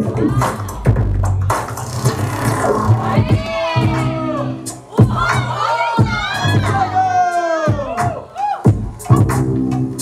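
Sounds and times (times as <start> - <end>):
crowd shouting and whooping: 0.0 - 1.0, 2.2 - 8.7
hip-hop beat over sound system: 0.0 - 10.0
heavy kick-drum hits: 5.0 - 5.3.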